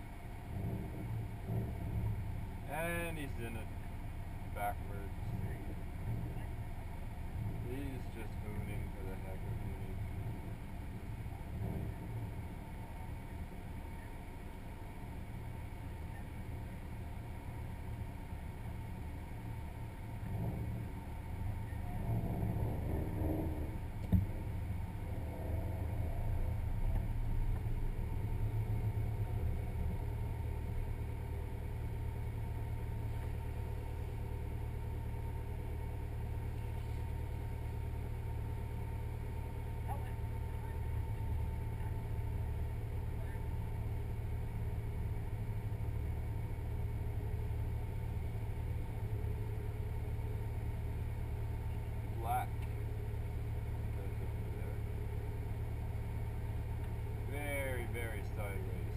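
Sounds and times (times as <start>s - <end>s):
car engine idling: 0.0s - 58.9s.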